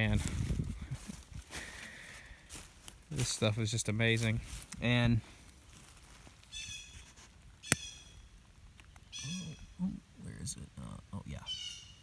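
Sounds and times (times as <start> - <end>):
bird calling: 6.4 - 10.2, 11.4 - 12.0.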